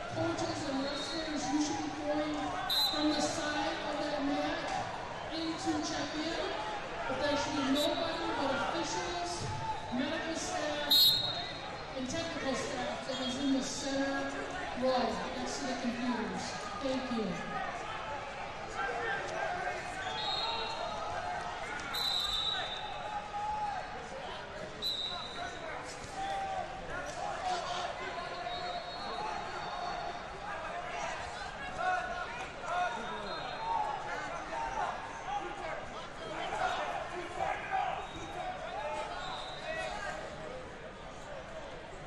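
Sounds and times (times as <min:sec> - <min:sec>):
crowd shouting and talking: 0:00.0 - 0:42.0
referee whistle blasts: 0:02.7 - 0:03.4, 0:10.8 - 0:11.6, 0:20.0 - 0:21.0, 0:21.9 - 0:23.0, 0:24.8 - 0:25.4, 0:39.2 - 0:40.0.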